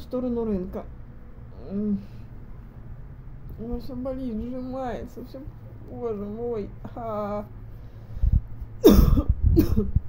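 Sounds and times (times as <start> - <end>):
dull low thumps: 8.2 - 10.0
woman coughing: 8.8 - 10.0.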